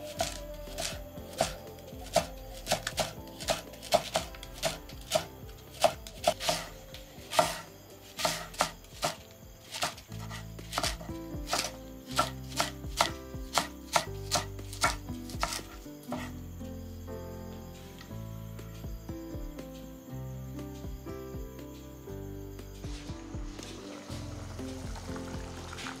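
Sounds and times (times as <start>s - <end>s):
knife chopping on wooden board: 0.2s - 6.7s, 7.3s - 7.6s, 8.2s - 16.3s.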